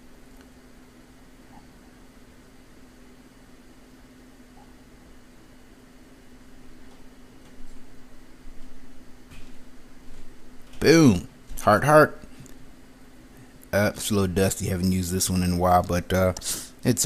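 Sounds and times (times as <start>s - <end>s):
low hum with faint hiss: 0.0s - 17.0s.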